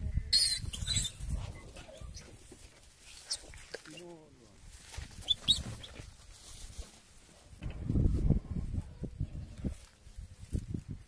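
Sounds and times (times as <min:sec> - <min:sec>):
wind rumble on microphone: 0:00.0 - 0:02.6, 0:07.5 - 0:11.0
piglet squealing: 0:00.4 - 0:01.2, 0:05.2 - 0:05.9.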